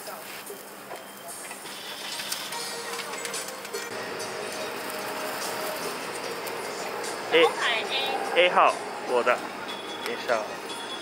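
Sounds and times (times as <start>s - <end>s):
food sizzling on a griddle: 0.0s - 2.8s, 3.9s - 9.3s
faint mechanical hum: 0.0s - 11.0s.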